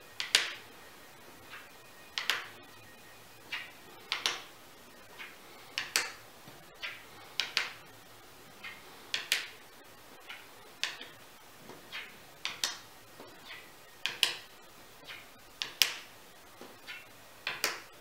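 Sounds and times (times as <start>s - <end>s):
game chips clicking on board: 0.2s - 0.6s, 1.6s - 2.6s, 3.5s - 4.5s, 5.2s - 6.2s, 6.8s - 7.8s, 8.6s - 9.6s, 10.2s - 11.2s, 11.9s - 16.1s, 16.8s - 17.9s.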